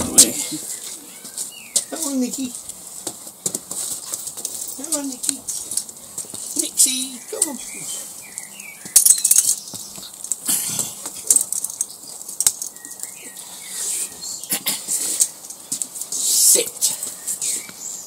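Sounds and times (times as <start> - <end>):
dog claws clicking and scuffing: 1.7 - 6.8, 8.2 - 13.5, 14.7 - 17.8.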